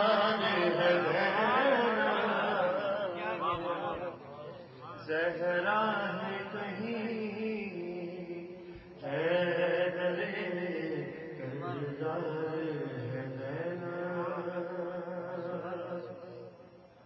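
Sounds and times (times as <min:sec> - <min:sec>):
man chanting: 0:00.0 - 0:16.6.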